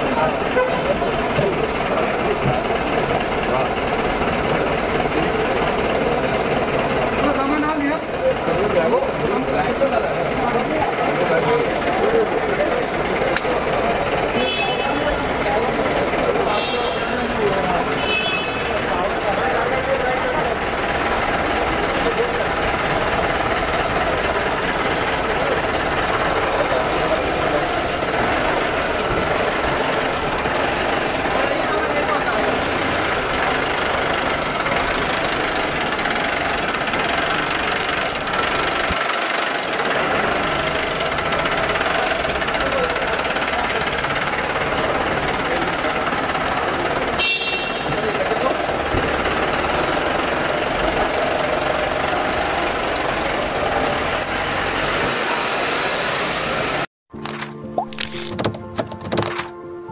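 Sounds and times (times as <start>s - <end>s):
car engine running: 0.0s - 55.2s
crowd chatter: 0.0s - 55.4s.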